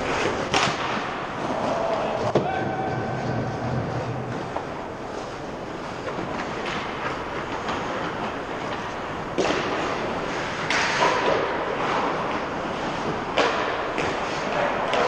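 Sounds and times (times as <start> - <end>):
loud skate scraping bursts: 0.0 - 15.0
rink background noise: 0.0 - 15.0
sticks and skates clicking on ice: 0.0 - 15.0.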